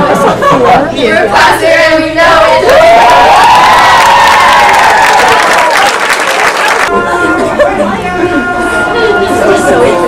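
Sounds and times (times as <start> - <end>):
high voice long cheer: 2.5 - 5.8
girls cheering and clapping: 2.6 - 7.0.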